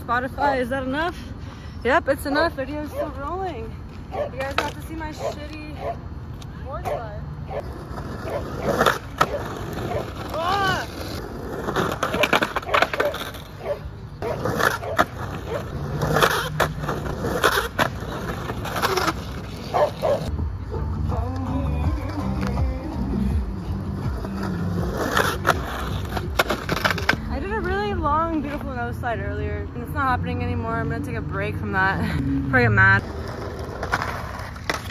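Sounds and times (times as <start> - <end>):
skateboard wheels rolling on asphalt: 0.0 - 34.9.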